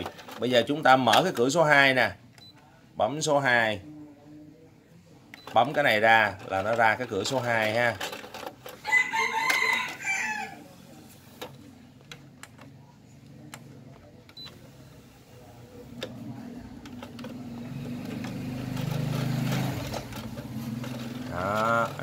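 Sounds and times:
rooster crowing: 0:08.8 - 0:10.8.

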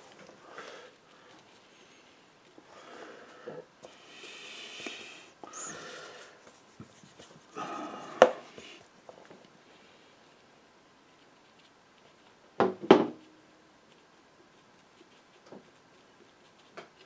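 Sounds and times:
brush scrubbing on paper: 0:05.6 - 0:08.7.

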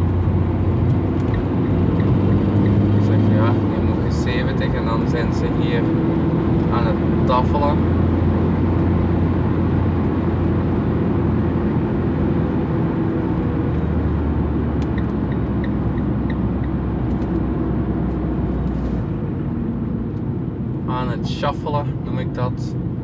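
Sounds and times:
van engine and road drone: 0:00.0 - 0:23.0.

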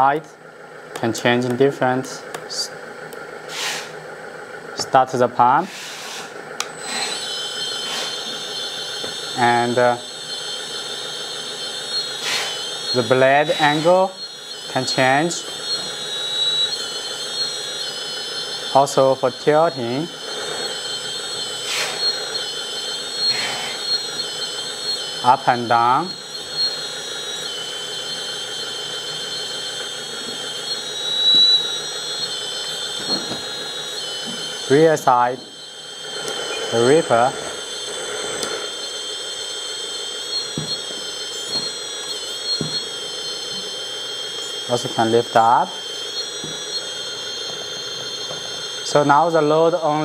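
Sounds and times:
hydraulic pump whining: 0:00.0 - 0:50.0
short hisses: 0:03.5 - 0:03.9, 0:05.7 - 0:06.3.

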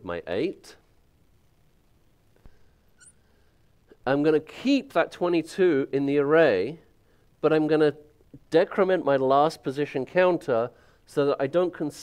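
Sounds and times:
marker squeaking on glass: 0:02.9 - 0:03.2.

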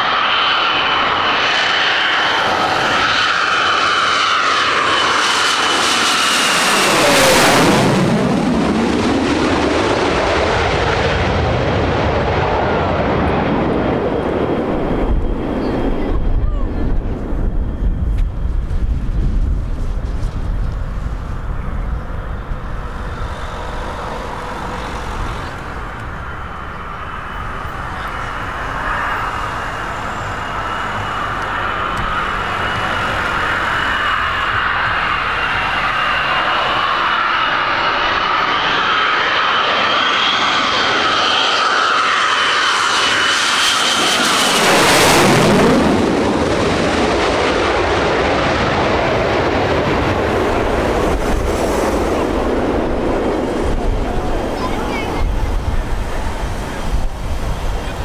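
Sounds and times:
jet engines whining: 0:00.0 - 0:58.0.

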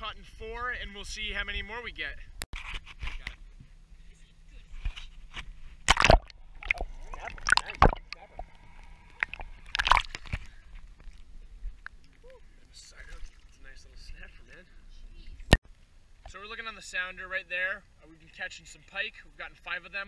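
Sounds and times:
water sloshing underwater: 0:05.2 - 0:15.6
loud splashes: 0:05.8 - 0:08.5, 0:09.2 - 0:10.5.

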